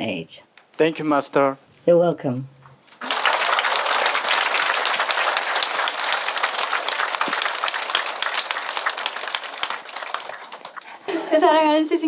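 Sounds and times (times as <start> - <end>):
audience applauding: 3.0 - 11.0.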